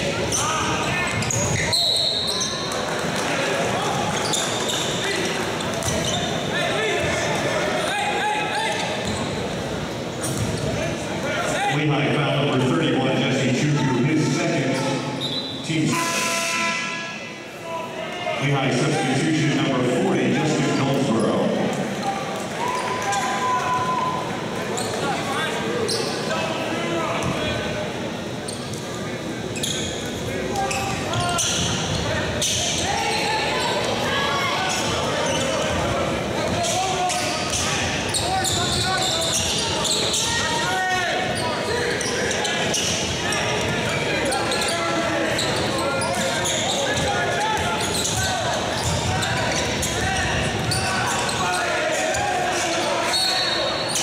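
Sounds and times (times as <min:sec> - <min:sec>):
crowd voices: 0:00.0 - 0:54.0.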